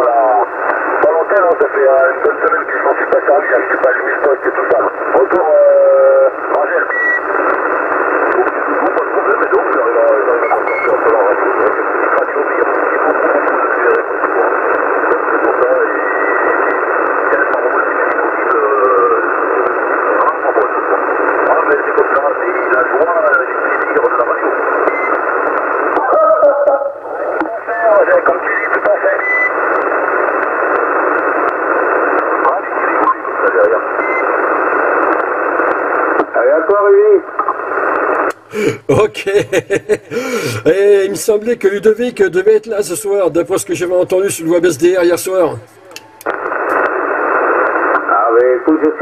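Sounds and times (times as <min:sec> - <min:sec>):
weak radio voice: 0:00.0 - 0:06.9, 0:07.6 - 0:24.9, 0:25.9 - 0:29.2, 0:30.7 - 0:34.6, 0:36.1 - 0:37.5, 0:38.5 - 0:49.0
radio static hiss: 0:00.0 - 0:49.0.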